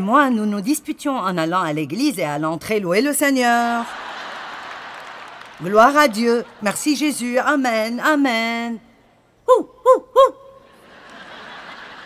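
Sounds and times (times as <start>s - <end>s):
woman making high hoots: 9.5s - 10.6s
audience laughter: 10.8s - 12.0s.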